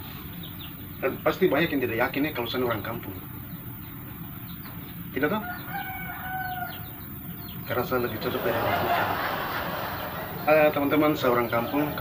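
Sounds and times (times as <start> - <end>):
faint bird chirps: 0.0 - 9.1
rural ambience hiss: 0.0 - 12.0.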